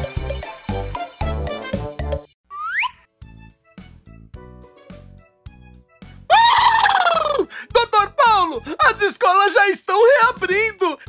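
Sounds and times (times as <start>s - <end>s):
light children's music: 0.0s - 11.0s
cartoon character excited cry: 6.3s - 8.6s.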